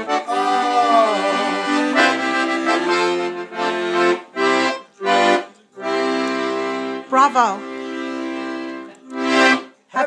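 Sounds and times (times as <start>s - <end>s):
accordion chords: 0.0s - 10.0s.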